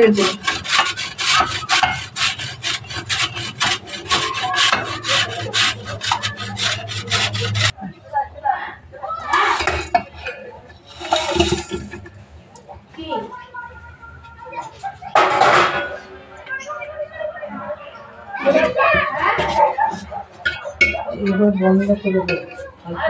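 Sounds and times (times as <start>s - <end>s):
coconut rasping on a metal grater: 0.0s - 7.8s, 10.9s - 12.0s
soft scraping: 0.0s - 7.8s, 9.2s - 12.4s.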